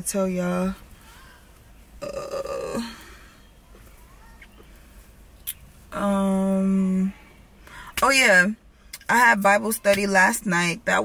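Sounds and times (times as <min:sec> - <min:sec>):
faint bird chirps: 0:01.0 - 0:05.7.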